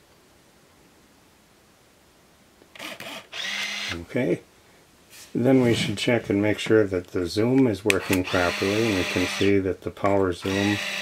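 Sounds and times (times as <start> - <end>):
camera shutter and lens mechanism: 2.7 - 4.0, 7.9 - 9.4, 10.4 - 11.0.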